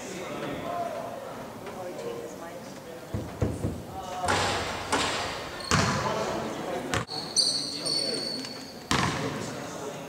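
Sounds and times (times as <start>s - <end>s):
basketball bouncing on hardwood floor: 3.2s - 6.0s, 8.9s - 9.2s
brief high squeak: 7.1s - 8.8s.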